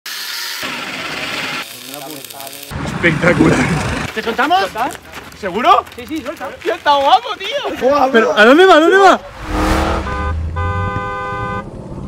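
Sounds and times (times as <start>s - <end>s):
angle grinder cutting steel: 0.1s - 2.7s.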